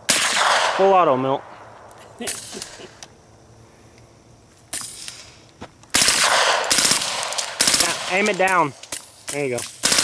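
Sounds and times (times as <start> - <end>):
suppressed gunshot: 0.1 - 0.8, 5.9 - 9.1
suppressed automatic gunfire bursts: 5.9 - 10.0.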